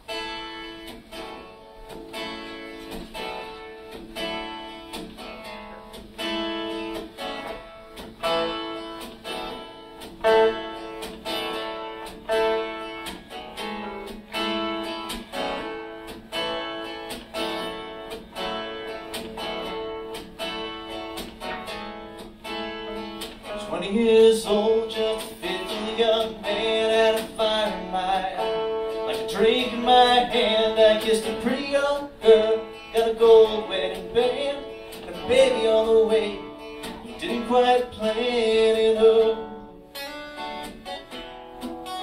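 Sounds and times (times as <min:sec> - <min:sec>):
strummed acoustic guitar: 0:00.0 - 0:42.0.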